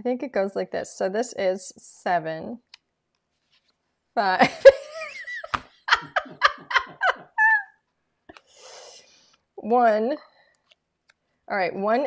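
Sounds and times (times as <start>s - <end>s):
soft rustle: 3.2s - 3.9s
woman laughing: 4.4s - 7.8s.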